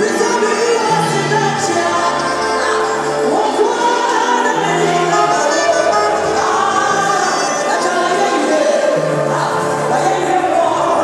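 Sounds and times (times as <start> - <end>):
band playing gospel music: 0.0 - 11.0
voices singing together: 0.0 - 11.0
woman singing into microphone: 0.0 - 11.0.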